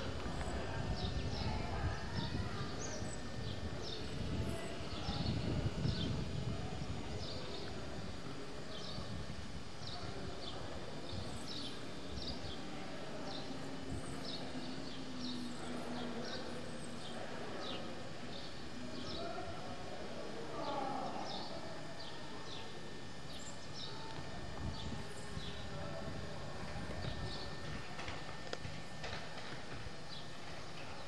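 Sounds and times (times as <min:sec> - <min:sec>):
wind buffeting microphone: 0:00.0 - 0:10.4
steady outdoor background: 0:00.0 - 0:31.0.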